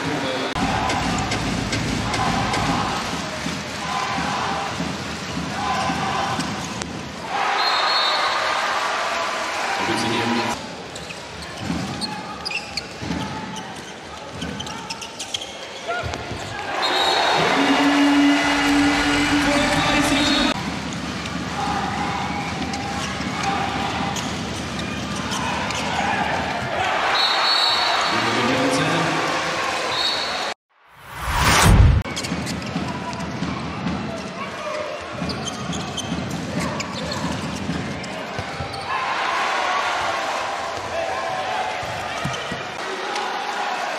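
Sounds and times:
crowd cheering: 0.0 - 10.6, 16.0 - 20.6, 21.4 - 24.2, 25.2 - 30.6, 38.6 - 43.9
shoes squeaking: 10.9 - 16.1
goal horn: 16.9 - 20.6.

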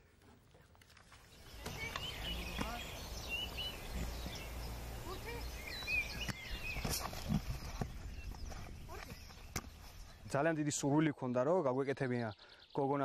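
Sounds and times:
birds chirping: 1.1 - 13.0
voices calling: 1.3 - 13.0
footfalls on grass: 5.7 - 10.1.

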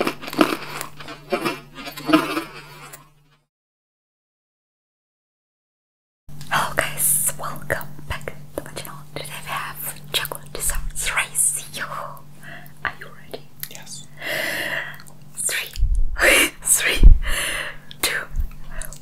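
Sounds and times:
steady low hum: 6.3 - 19.0
person whispering: 6.5 - 12.1, 12.8 - 14.1, 15.4 - 17.1, 18.0 - 19.0.

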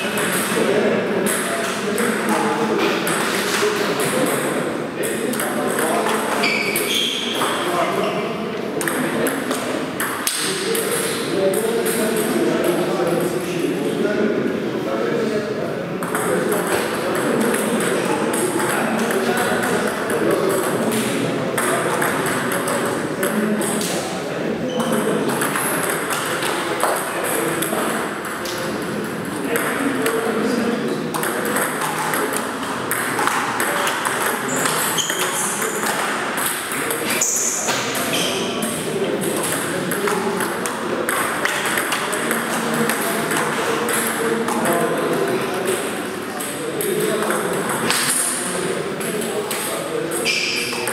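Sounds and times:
ball bouncing on table: 0.0 - 7.7, 8.8 - 13.3, 16.0 - 24.0, 24.7 - 30.3, 31.1 - 45.8
ping pong ball clicking off paddles: 0.0 - 7.8, 8.7 - 13.4, 16.0 - 24.0, 24.7 - 50.9
voices chattering: 0.0 - 50.9.

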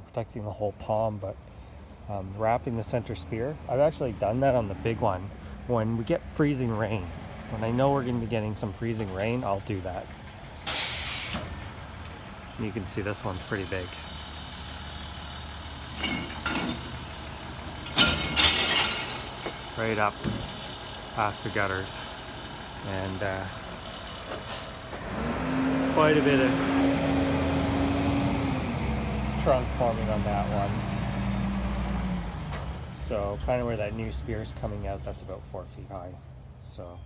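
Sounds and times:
idling engine hum: 11.4 - 36.8.

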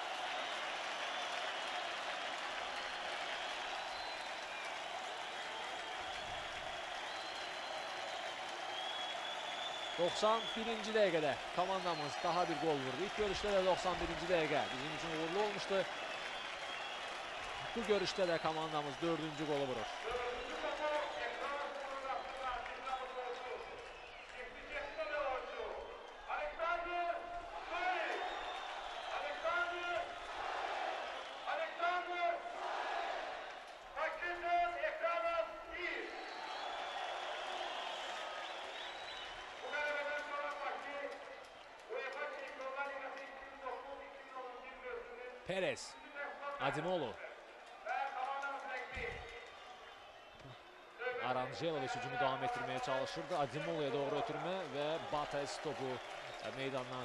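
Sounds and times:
man talking: 10.0 - 15.9, 17.6 - 23.7, 42.0 - 47.2, 51.0 - 57.0.

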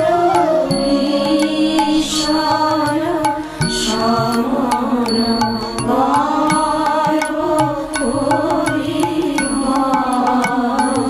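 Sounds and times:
hand percussion strokes: 0.0 - 11.0
instrumental accompaniment: 0.0 - 11.0
person singing: 0.0 - 11.0.

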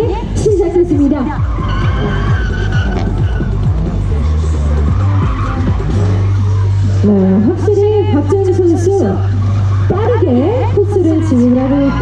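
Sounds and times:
background music with bass: 0.0 - 12.0
car tyres squealing: 1.0 - 12.0.

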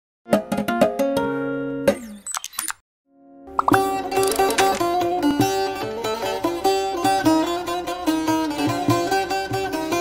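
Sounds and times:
plucked lute music: 3.7 - 10.0.

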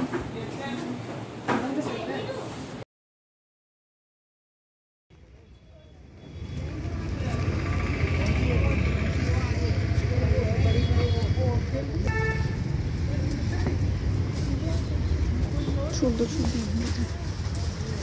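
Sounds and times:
low traffic rumble: 5.1 - 18.0
people talking: 6.6 - 12.1, 13.0 - 18.0
short vehicle horn toot: 12.1 - 12.6.

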